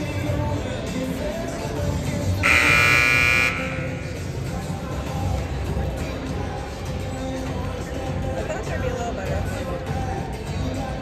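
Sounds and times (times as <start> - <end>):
arena music: 0.0 - 11.0
scoreboard horn buzzing blast: 2.4 - 4.2.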